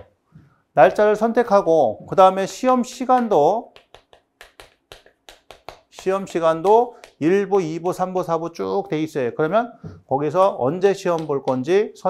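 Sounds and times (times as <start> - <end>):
chalk tapping on chalkboard: 3.0 - 7.4.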